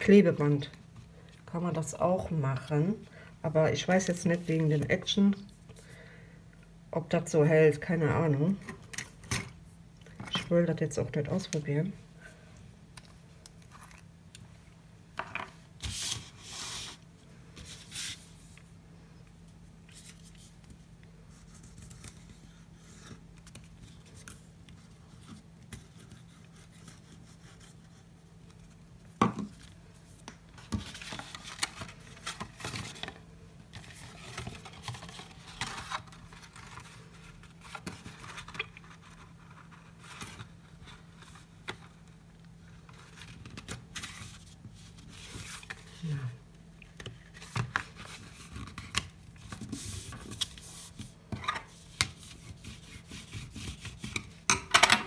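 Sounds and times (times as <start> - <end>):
paper rustling: 30.6 - 42.1.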